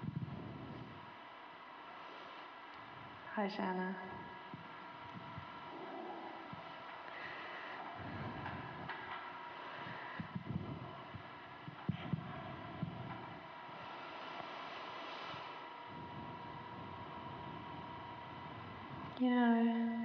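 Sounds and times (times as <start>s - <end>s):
steady hum: 0.0s - 20.0s
low irregular throbbing: 2.9s - 14.6s, 15.3s - 20.0s.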